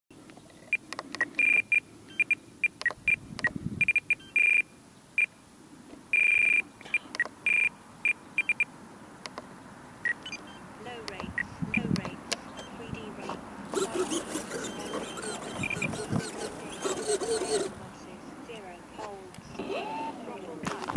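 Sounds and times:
electronic beeps: 0:10.1 - 0:10.6.

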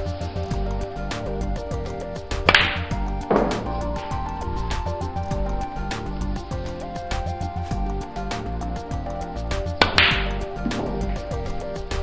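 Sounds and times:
background music: 0:00.0 - 0:12.0
snooker balls knocking: 0:02.5 - 0:04.0, 0:09.8 - 0:11.8
cue striking ball: 0:02.5 - 0:04.1, 0:09.8 - 0:11.8.

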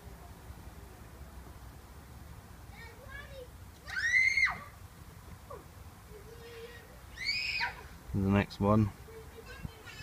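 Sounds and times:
high-pitched squealing calls: 0:06.4 - 0:07.8.

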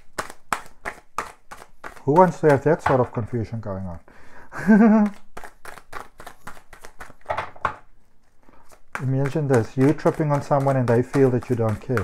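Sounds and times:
cards being shuffled: 0:05.0 - 0:07.6, 0:08.2 - 0:12.0.

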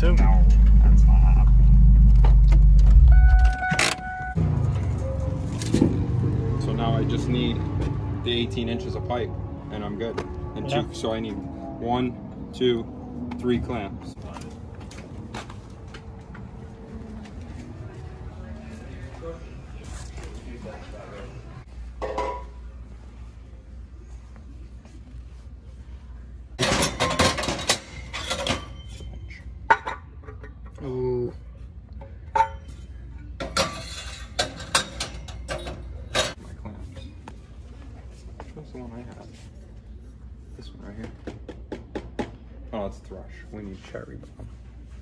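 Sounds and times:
metal pipes clinking and clattering: 0:26.6 - 0:30.5, 0:32.3 - 0:36.4.

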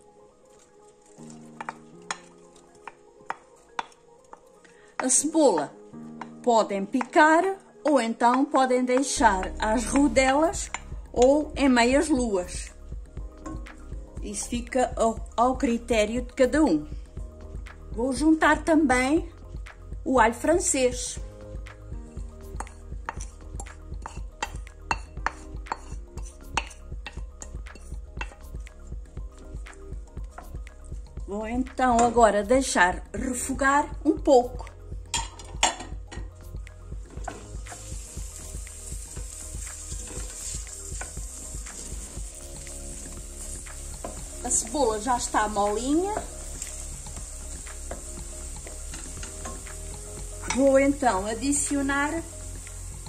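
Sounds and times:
onion sizzling in oil: 0:08.2 - 0:16.9, 0:17.5 - 0:31.1, 0:35.1 - 0:53.0.

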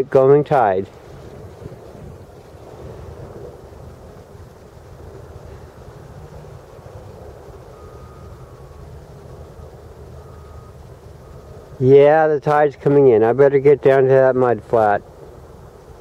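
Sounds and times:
distant port hum: 0:00.0 - 0:16.0
wind rumble on microphone: 0:00.0 - 0:16.0
faint high steady tone: 0:05.4 - 0:15.2.

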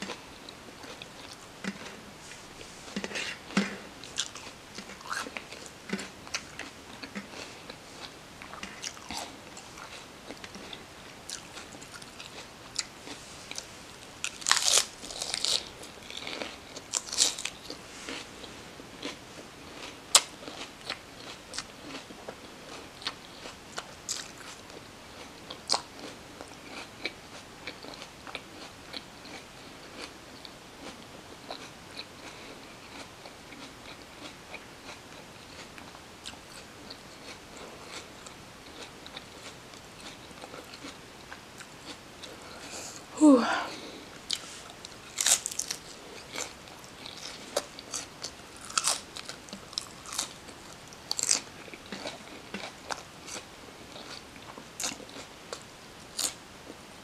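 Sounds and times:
crunchy chewing: 0:00.0 - 0:43.0, 0:43.8 - 0:56.8.

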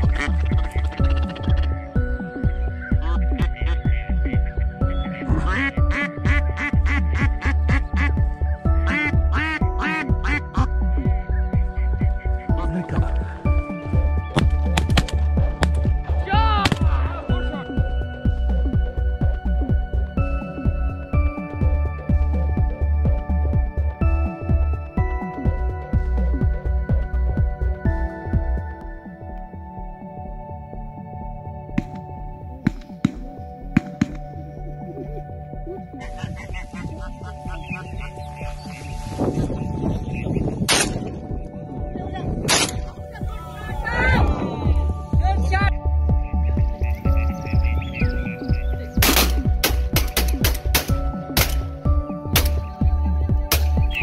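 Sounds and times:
duck quacks: 0:00.0 - 0:01.7, 0:03.0 - 0:08.1, 0:08.9 - 0:10.7, 0:36.0 - 0:38.2
background music with steady beat: 0:00.0 - 0:54.0
shotgun shots: 0:49.0 - 0:51.7, 0:52.4 - 0:52.6.

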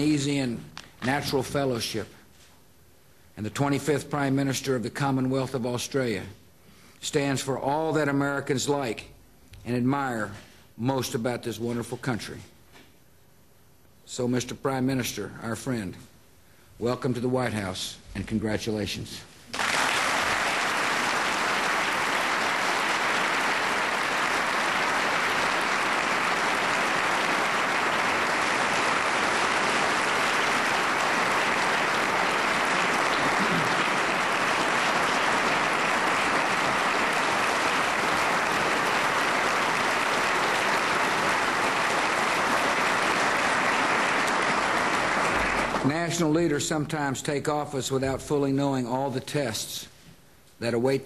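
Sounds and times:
audience applauding: 0:19.5 - 0:46.0.

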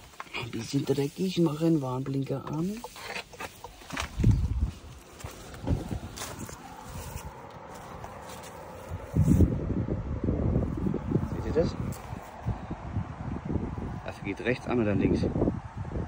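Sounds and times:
rustling and handling noise: 0:00.0 - 0:09.5
footsteps on grass and paving: 0:00.0 - 0:09.6, 0:11.8 - 0:12.4.

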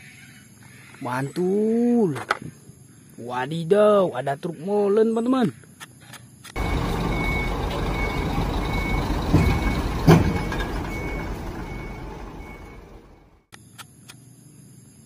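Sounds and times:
diesel truck engine running: 0:06.6 - 0:13.5
reversing alarm beeping: 0:06.6 - 0:13.5.

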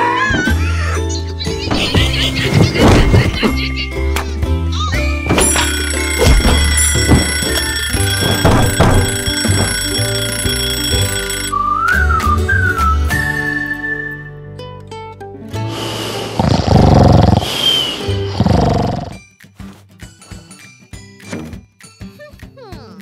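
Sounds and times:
cartoon music: 0:00.0 - 0:13.4
thumps: 0:05.3 - 0:11.2
alarm clock ringing: 0:05.3 - 0:11.6.

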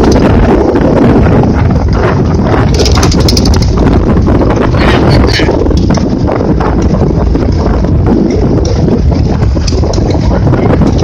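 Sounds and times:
motorcycle running noise: 0:00.0 - 0:11.0
wind buffeting microphone: 0:00.0 - 0:11.0.

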